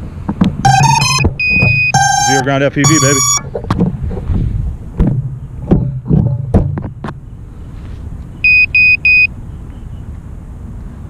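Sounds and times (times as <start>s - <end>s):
long higher beep: 0.6s - 3.4s, 8.4s - 9.3s
electronic beeping tones: 0.6s - 3.5s, 8.4s - 9.3s.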